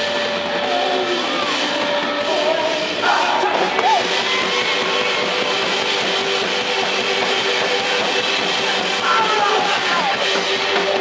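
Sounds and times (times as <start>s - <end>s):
loud rock band playing: 0.0s - 11.0s.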